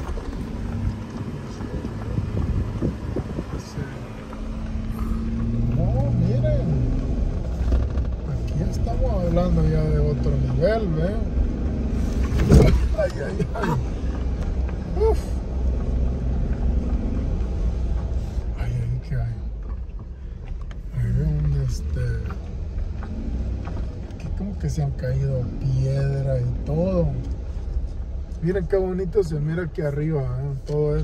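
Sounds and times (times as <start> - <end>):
wind buffeting microphone: 0.0 - 5.7
car driving rumble: 0.0 - 31.0.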